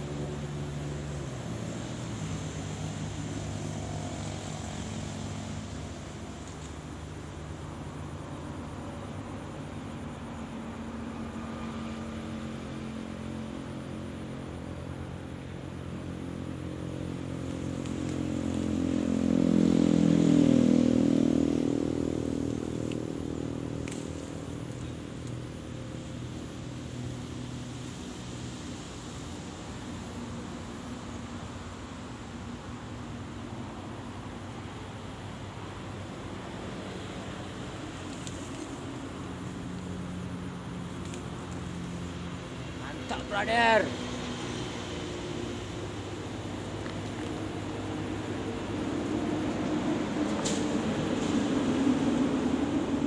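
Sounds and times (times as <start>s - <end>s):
motor engine droning: 0.0s - 53.0s.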